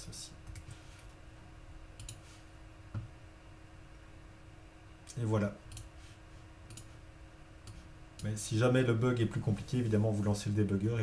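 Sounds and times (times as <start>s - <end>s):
computer mouse clicks: 2.0s - 2.2s, 6.7s - 6.9s.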